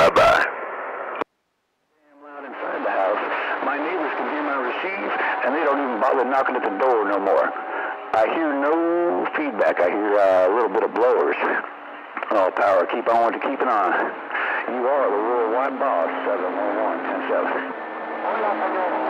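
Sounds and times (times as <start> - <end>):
voices talking over a radio: 0.0 - 0.5, 2.0 - 19.0.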